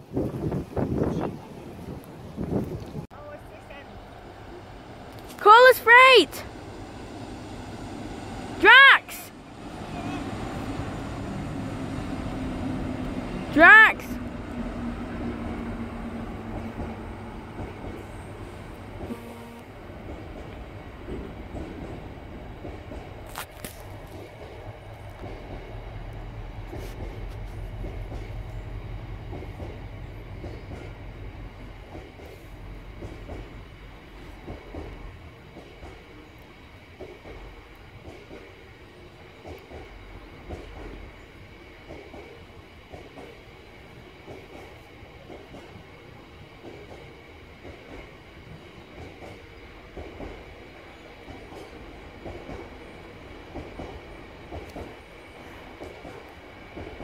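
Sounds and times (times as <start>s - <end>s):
freight train rolling past: 0.0s - 57.0s.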